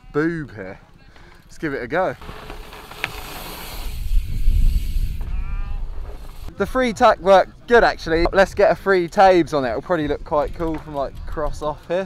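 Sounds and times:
bike tyres rolling on dirt: 0:01.6 - 0:11.7
wind rumbling on microphone: 0:02.2 - 0:07.2, 0:07.8 - 0:11.8.

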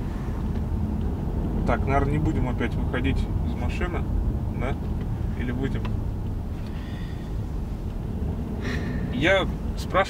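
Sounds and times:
car cabin road and engine noise: 0:00.0 - 0:10.0.

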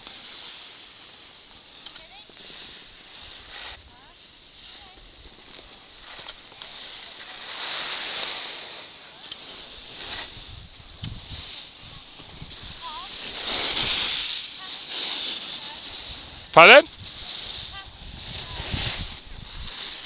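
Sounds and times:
skis scraping over snow: 0:00.0 - 0:20.0
wind on microphone: 0:10.2 - 0:14.1, 0:16.0 - 0:20.0.

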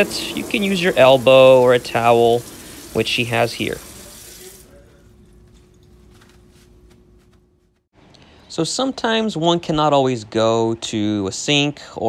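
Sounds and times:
faucet water running into sink: 0:00.0 - 0:04.7.

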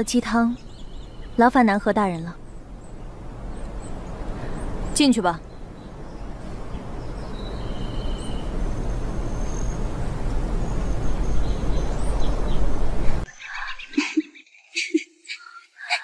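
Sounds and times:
birds chirping and whistling: 0:05.6 - 0:09.9
steady rushing noise: 0:08.3 - 0:13.3.

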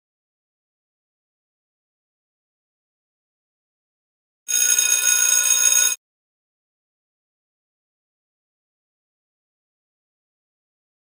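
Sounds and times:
electronic timer chime: 0:04.5 - 0:06.0.

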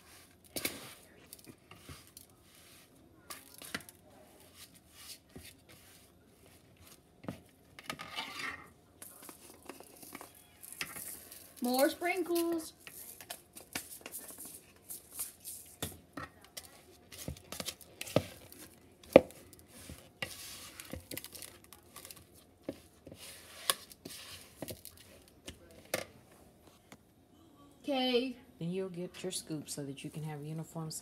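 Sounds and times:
spatula scraping plastic bowl: 0:00.0 - 0:11.8, 0:17.1 - 0:25.2.

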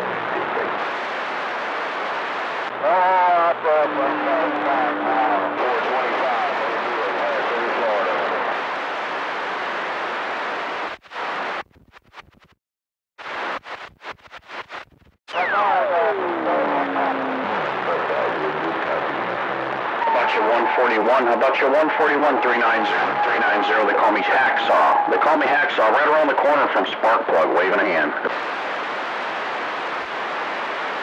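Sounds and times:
radio static: 0:00.0 - 0:12.6, 0:13.2 - 0:31.0.

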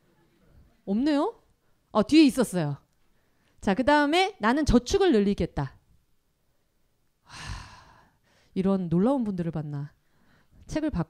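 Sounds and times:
woman sighing breathily: 0:07.2 - 0:08.3.

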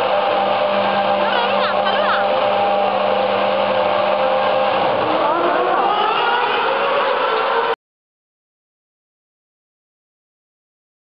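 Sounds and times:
steady hum: 0:00.0 - 0:06.9
racing car engine accelerating: 0:00.0 - 0:07.8.

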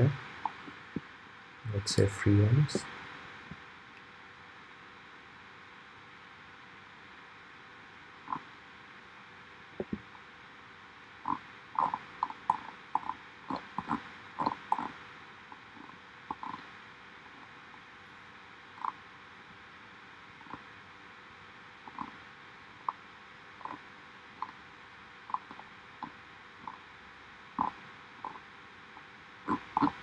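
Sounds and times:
faint steady hiss: 0:00.0 - 0:30.0.

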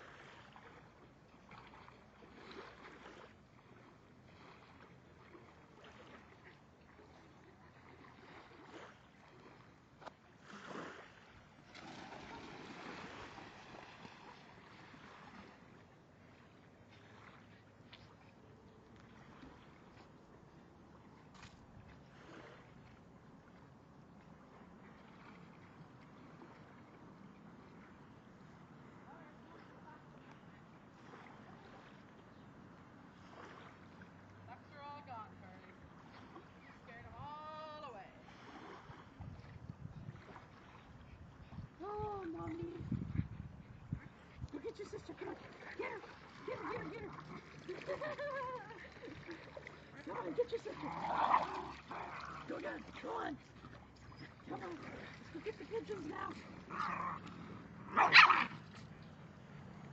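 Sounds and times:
water splashing: 0:00.0 - 0:43.2, 0:43.9 - 0:59.9.

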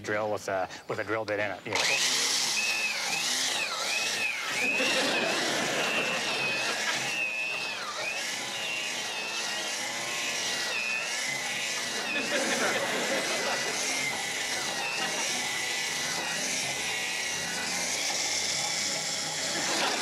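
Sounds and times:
electric drill boring into wood: 0:01.7 - 0:20.0.

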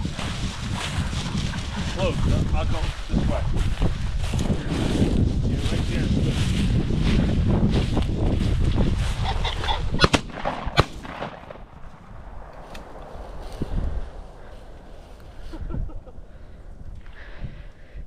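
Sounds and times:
footsteps through dry grass: 0:00.0 - 0:15.8
wind on microphone: 0:00.0 - 0:18.0
shotgun shots: 0:10.0 - 0:11.8.

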